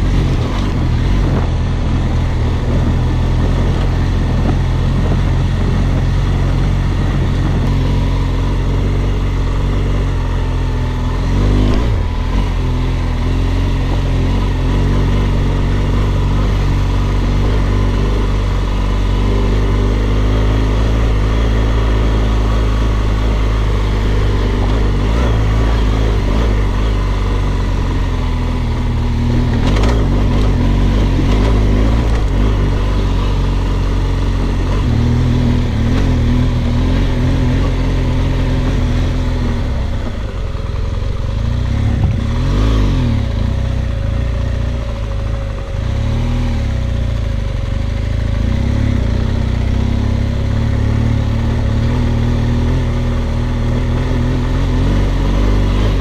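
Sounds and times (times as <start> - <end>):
motorcycle engine running: 0.0 - 56.0
wind and tire noise: 0.0 - 56.0.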